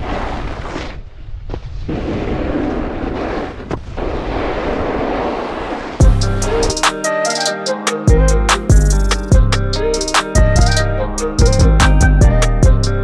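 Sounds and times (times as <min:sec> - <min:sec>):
snowboard sliding on snow: 0:00.0 - 0:06.0
wind rushing over microphone: 0:00.0 - 0:06.1
music with drum beat: 0:06.0 - 0:13.0.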